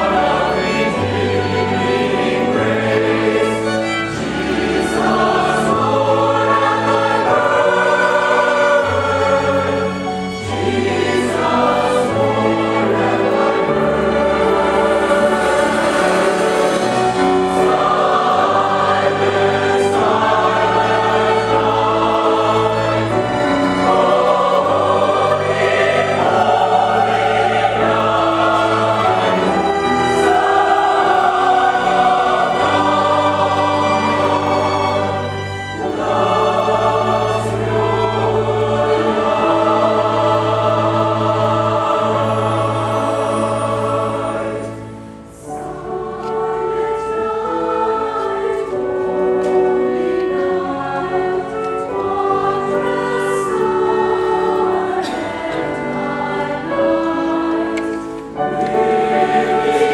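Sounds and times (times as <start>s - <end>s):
mixed choir singing: 0.0s - 59.9s
piano: 0.0s - 59.9s
strings: 0.0s - 59.9s.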